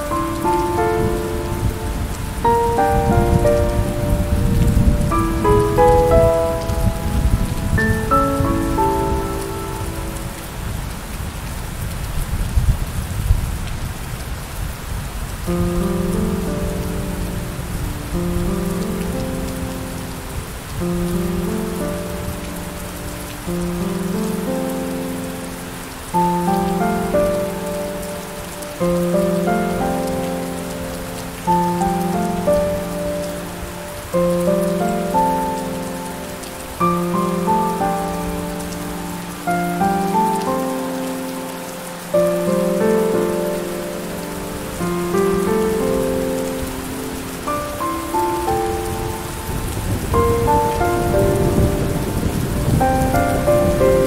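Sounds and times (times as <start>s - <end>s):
rain hiss: 0.0s - 54.0s
soft piano chords: 0.0s - 54.0s.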